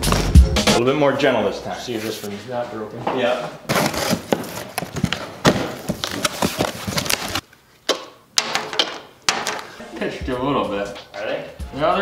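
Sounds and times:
cardboard and packing crackling: 3.7s - 7.4s.

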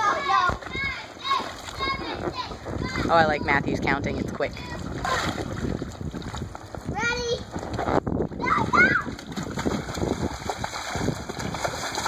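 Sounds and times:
water splashing in a pool: 0.0s - 12.0s.

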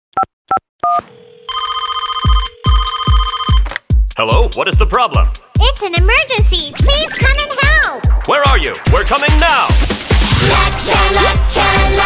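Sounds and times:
phone keypad beeps: 0.8s - 3.7s
phone line ringing: 0.8s - 3.7s.

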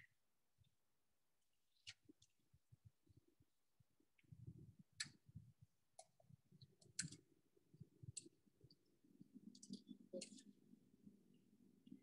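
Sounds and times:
faint clicks: 4.2s - 7.3s, 8.1s - 8.8s, 9.5s - 10.6s.

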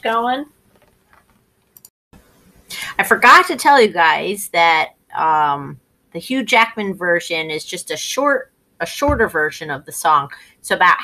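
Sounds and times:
woman speaking: 0.0s - 0.5s, 2.7s - 11.0s.

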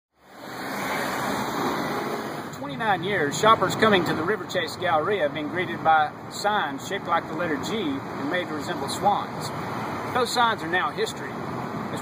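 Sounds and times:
road traffic rushing: 0.2s - 12.0s.

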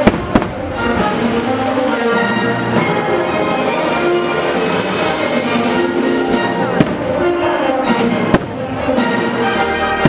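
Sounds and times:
firework bang: 0.0s - 0.8s, 6.8s - 7.2s, 8.3s - 8.6s
loud show music: 0.0s - 10.0s.

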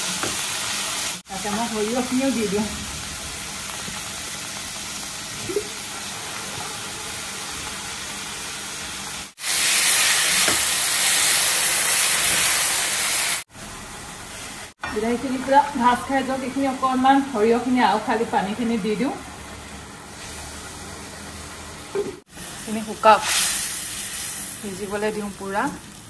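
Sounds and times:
food sizzling in hot oil: 0.0s - 14.8s, 19.2s - 26.0s
loud sharp sizzle: 0.0s - 14.8s, 22.2s - 26.0s.

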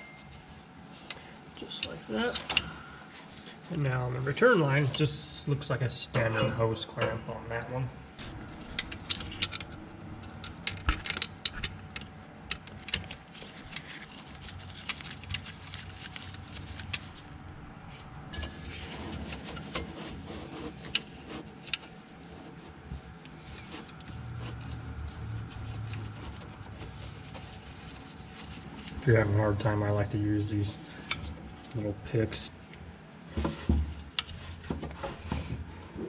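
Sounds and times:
rubber hose rubbing and scraping: 12.7s - 18.1s, 18.8s - 28.8s.

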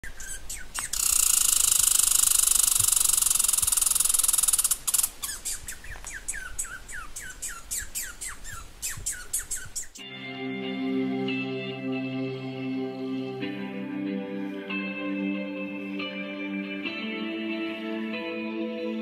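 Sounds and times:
bird chirps: 0.0s - 10.0s
rapid buzzing bird trill: 0.0s - 10.0s.

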